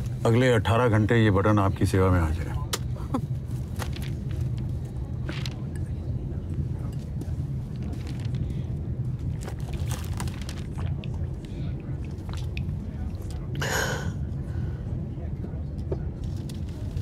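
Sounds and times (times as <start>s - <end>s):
airliner cabin drone: 0.0s - 17.0s.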